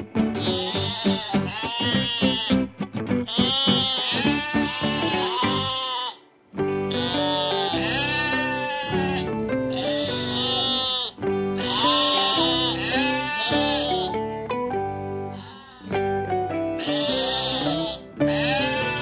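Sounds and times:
background music: 0.0 - 19.0
sheep bleating: 0.3 - 6.3, 6.9 - 14.3, 15.3 - 16.1, 16.7 - 19.0.

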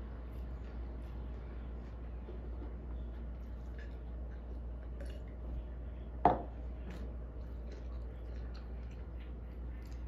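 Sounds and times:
steady low hum: 0.0 - 10.0
plastic cup knocking on wooden table: 6.3 - 6.5.

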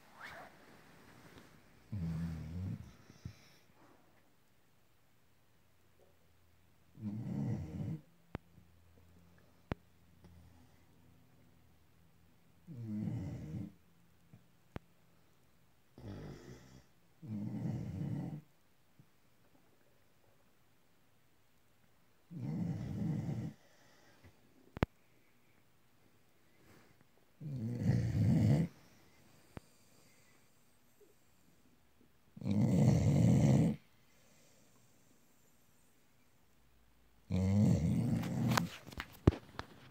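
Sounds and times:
dog snoring: 1.9 - 3.6, 7.0 - 8.1, 12.7 - 13.8, 16.0 - 18.5, 22.3 - 23.7, 27.4 - 28.8, 32.4 - 34.4, 37.3 - 38.8.

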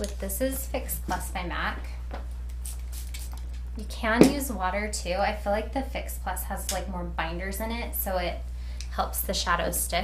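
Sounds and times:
steady low hum: 0.0 - 10.0
spray bottle hisses: 2.6 - 3.4.

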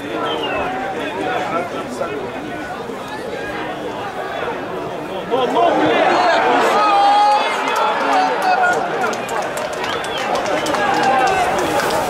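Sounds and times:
men shouting and calling: 0.0 - 12.0
stadium crowd noise: 0.0 - 12.0.

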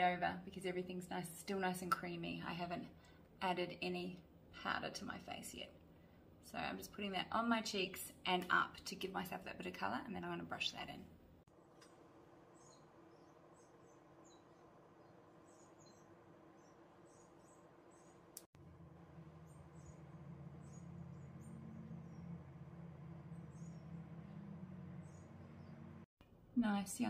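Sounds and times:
low steady hum: 0.0 - 27.0.

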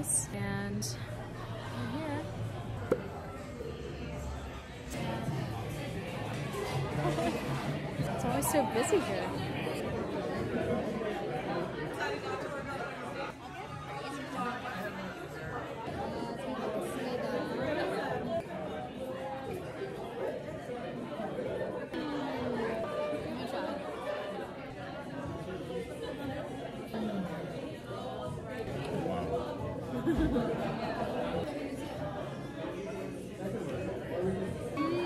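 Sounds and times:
diners chattering: 0.0 - 35.0.

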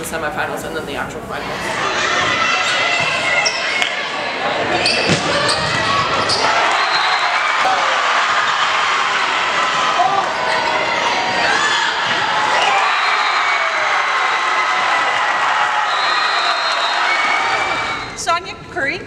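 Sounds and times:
crowd cheering and shouting: 1.5 - 18.2.

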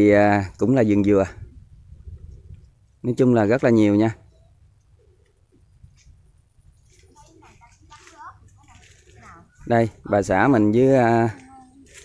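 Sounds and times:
man speaking: 3.0 - 4.2, 9.6 - 11.4
faint low bird calls: 4.1 - 7.9.

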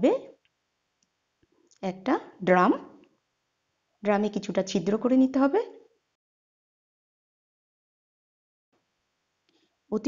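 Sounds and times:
woman narrating: 0.0 - 0.3, 1.8 - 3.0, 4.0 - 5.8.

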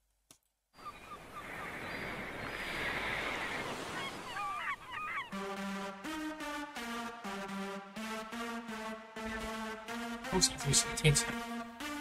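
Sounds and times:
wind: 0.7 - 5.4
bird calls: 0.8 - 5.4
surf: 1.2 - 5.3.

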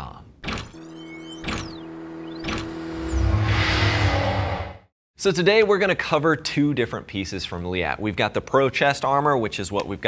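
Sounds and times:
held synth tone: 0.8 - 4.9
loud low rumble: 2.3 - 4.9
sharp whoosh: 2.4 - 4.9.

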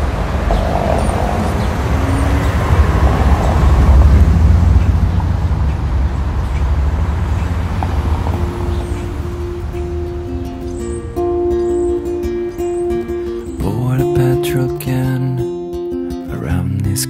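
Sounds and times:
low rumbling noise: 0.0 - 14.1
held guitar notes: 0.0 - 17.0.

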